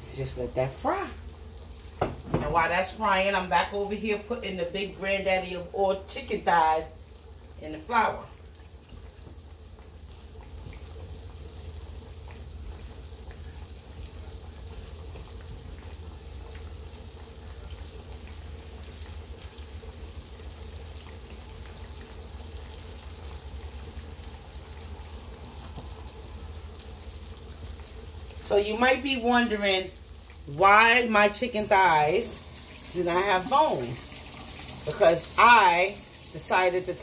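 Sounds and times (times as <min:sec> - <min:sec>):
chicken frying in hot oil: 0:00.0 - 0:37.0.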